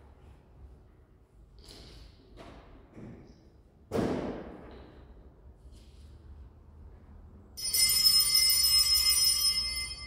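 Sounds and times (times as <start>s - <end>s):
small brass bells ringing: 7.6s - 10.0s.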